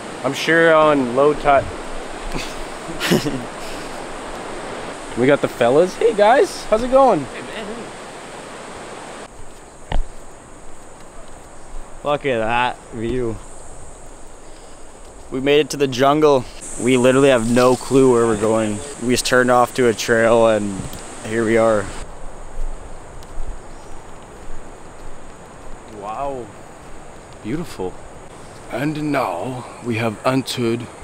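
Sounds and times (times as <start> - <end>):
surf rushing: 0.0 - 9.3, 10.4 - 22.1
crickets and insects buzzing: 0.0 - 31.0
steady outdoor hiss: 0.0 - 31.0
footsteps rustling on leaves: 1.7 - 28.7
sharp thump: 9.9 - 10.2.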